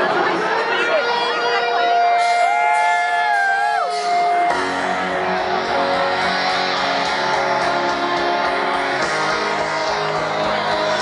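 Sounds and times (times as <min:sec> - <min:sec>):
crowd noise: 0:00.0 - 0:11.0
electric guitar feedback tones: 0:00.8 - 0:11.0.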